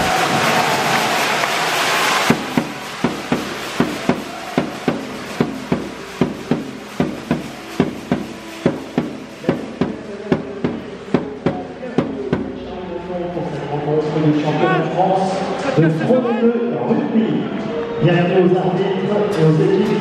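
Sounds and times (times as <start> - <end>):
loud stadium noise: 0.0 - 20.0
sharp pounding strikes: 2.2 - 12.7
faint musical tones: 2.4 - 20.0.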